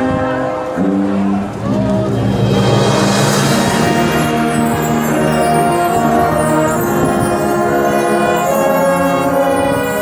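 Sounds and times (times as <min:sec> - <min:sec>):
brass band playing low notes: 0:00.0 - 0:10.0.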